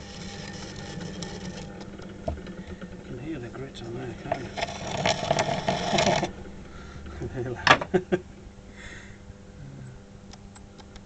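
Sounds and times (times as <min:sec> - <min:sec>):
rib scraping clay on potter's wheel: 0:00.0 - 0:06.4
man laughing: 0:07.1 - 0:08.4.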